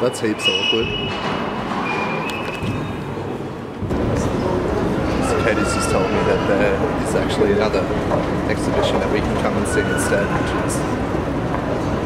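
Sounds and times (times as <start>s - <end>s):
indoor hall rumble and hubbub: 0.0s - 12.0s.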